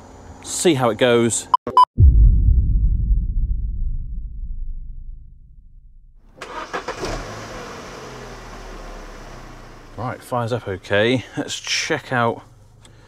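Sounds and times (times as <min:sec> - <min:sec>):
low rumble: 0:02.0 - 0:06.4
car engine starting and idling: 0:06.2 - 0:11.0.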